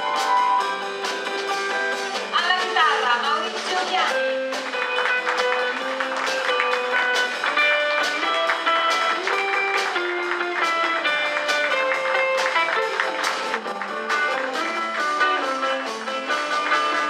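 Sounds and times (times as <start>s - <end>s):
upright double bass: 0.0s - 17.0s.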